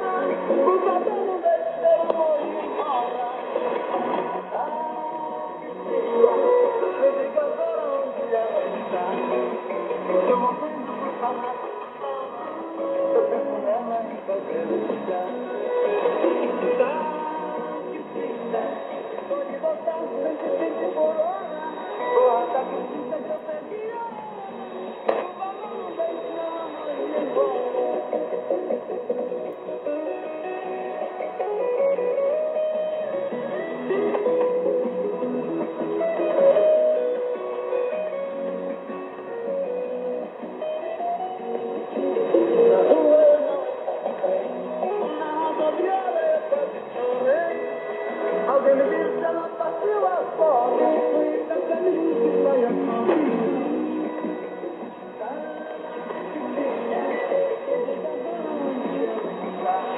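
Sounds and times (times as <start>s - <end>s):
music on shortwave radio: 0.0s - 59.9s.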